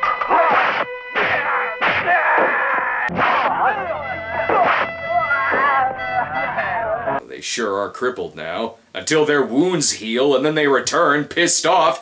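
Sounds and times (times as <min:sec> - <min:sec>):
punch impact sound effects: 0:00.1 - 0:02.2, 0:03.1 - 0:05.9
fighters shouting and groaning: 0:00.2 - 0:07.2
held music note: 0:03.6 - 0:07.2.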